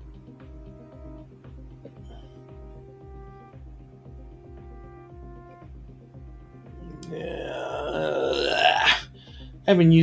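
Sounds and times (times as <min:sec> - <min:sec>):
man groaning: 0:06.9 - 0:09.1.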